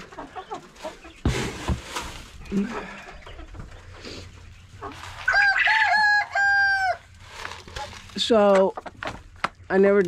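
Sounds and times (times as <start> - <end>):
rooster crowing: 5.3 - 7.1.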